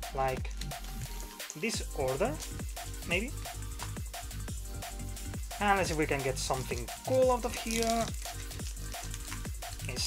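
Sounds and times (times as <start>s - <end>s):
background music: 0.0s - 10.0s
foil wrapper crinkling: 0.5s - 1.7s, 6.5s - 10.0s.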